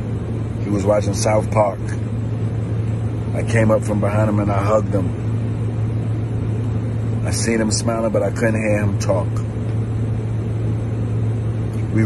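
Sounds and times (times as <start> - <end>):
vehicle cabin rumble and hum: 0.0 - 12.0.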